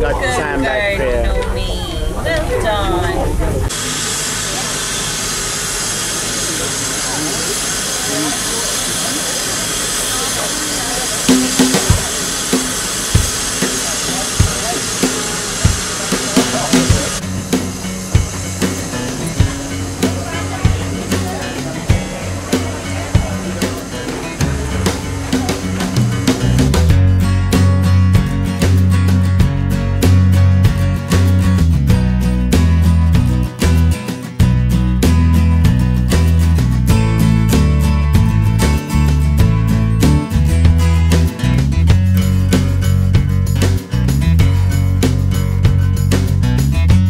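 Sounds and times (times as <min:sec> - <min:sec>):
steam locomotive hissing: 0:03.6 - 0:27.6
music with drum beat: 0:11.1 - 0:47.0.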